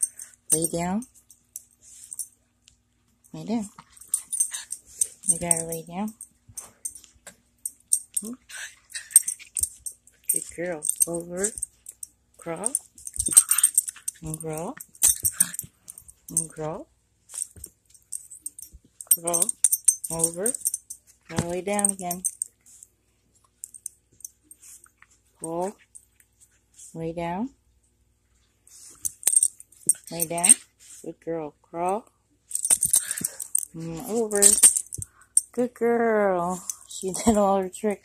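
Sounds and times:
dog collar tags jingling: 0.0 - 2.4, 3.2 - 16.7, 17.3 - 22.8, 28.9 - 30.6, 32.5 - 35.6.

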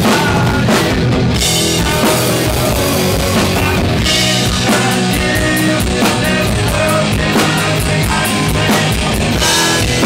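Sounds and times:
distorted electric guitar: 0.0 - 10.0
drum kit with cymbal hits: 0.0 - 10.0
man singing: 0.0 - 10.0.

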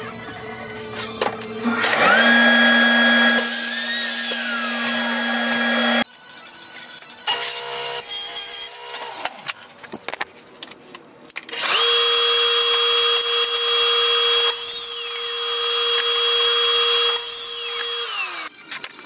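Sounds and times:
miter saw cutting board: 1.6 - 6.0.

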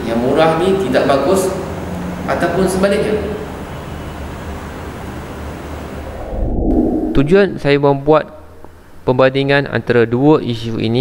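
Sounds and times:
steady rushing noise: 5.8 - 8.0
low hum: 5.8 - 9.0.

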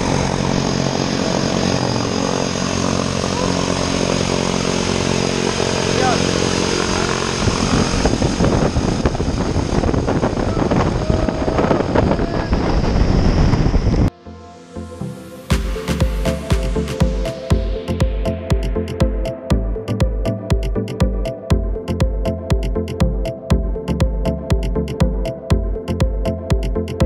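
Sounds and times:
propeller wash buffeting microphone: 0.0 - 14.1, 15.5 - 27.0
turboprop engines running: 0.0 - 27.0.

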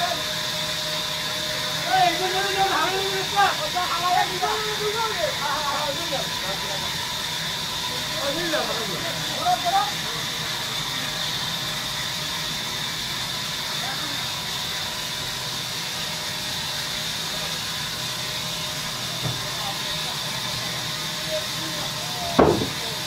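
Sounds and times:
band saw cutting log: 14.6 - 23.0.

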